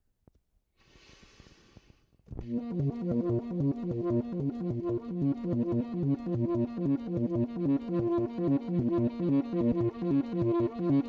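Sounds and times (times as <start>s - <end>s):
breath through saxophone: 0.8s - 2.2s.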